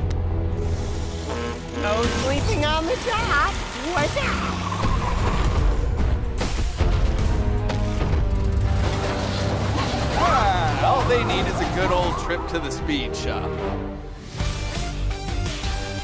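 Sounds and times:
cartoon background music: 0.5 - 16.0.

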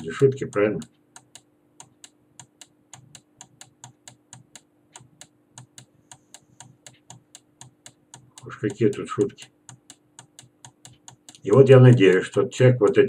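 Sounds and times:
faint steady hum: 0.0 - 13.0
rapid computer mouse clicking: 0.0 - 13.0.

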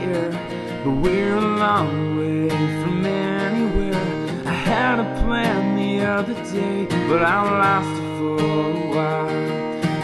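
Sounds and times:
acoustic guitar strumming: 0.0 - 10.0
man singing: 0.0 - 10.0.

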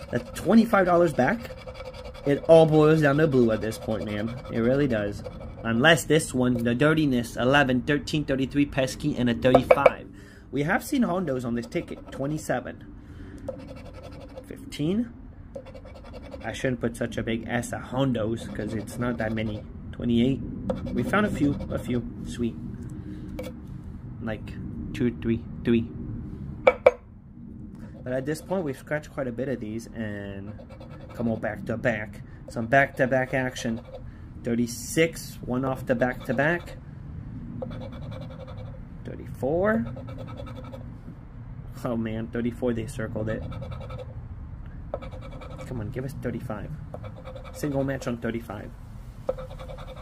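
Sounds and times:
scratch-off ticket being scratched: 0.0 - 5.8, 10.9 - 12.4, 13.5 - 14.5, 15.6 - 16.6, 18.4 - 19.6, 20.7 - 21.9, 30.4 - 31.5, 36.0 - 36.5, 37.6 - 38.7, 39.8 - 40.8, 43.3 - 44.1, 45.0 - 45.8, 47.0 - 48.1, 49.3 - 50.0.

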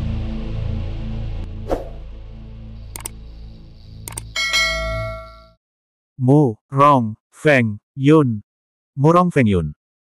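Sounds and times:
mouse clicks: 3.0 - 3.2, 4.1 - 4.3
notification bell ding: 4.4 - 5.6.

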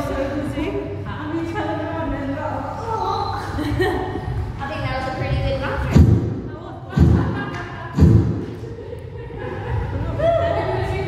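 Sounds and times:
heavy low thumps: 3.6 - 11.0.

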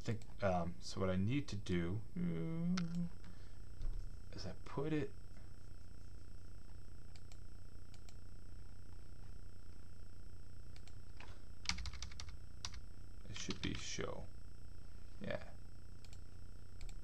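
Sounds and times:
low electrical hum: 0.0 - 17.0
computer keyboard typing: 11.6 - 12.8, 13.4 - 13.9.

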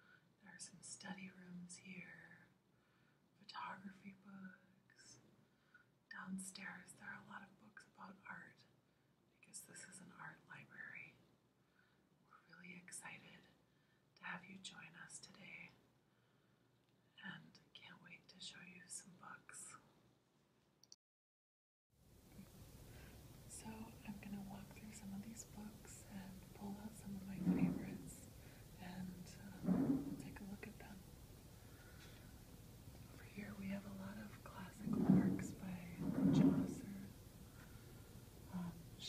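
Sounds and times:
woman whispering softly: 0.4 - 2.5, 3.4 - 5.3, 6.1 - 8.7, 9.4 - 11.2, 12.3 - 13.6, 14.2 - 15.8, 17.2 - 19.9, 23.5 - 31.0, 33.1 - 37.2, 38.5 - 39.0.

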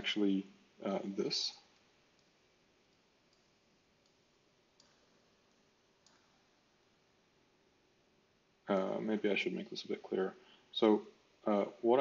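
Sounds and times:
stylus clicking on a tablet: 1.7 - 6.5.

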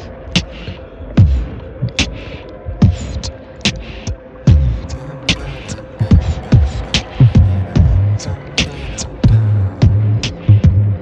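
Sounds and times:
beatboxing: 0.0 - 11.0
steady hum: 0.0 - 11.0.

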